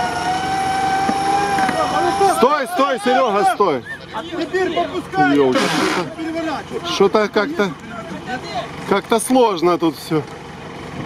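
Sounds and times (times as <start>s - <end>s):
men talking and calling out: 0.0s - 10.4s.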